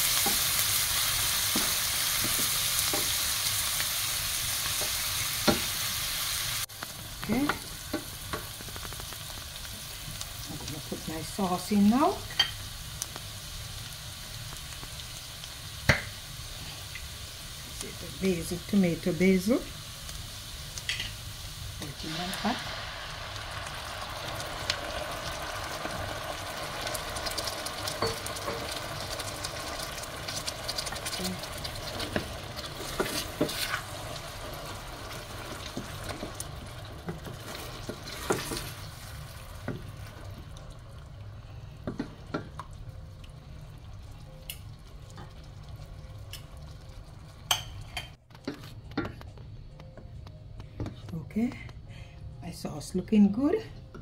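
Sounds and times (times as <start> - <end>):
vegetables sizzling in oil: 0.0 - 48.0.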